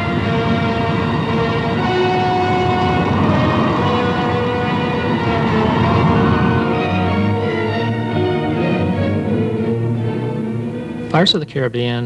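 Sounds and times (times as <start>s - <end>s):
orchestral film music: 0.0s - 12.0s.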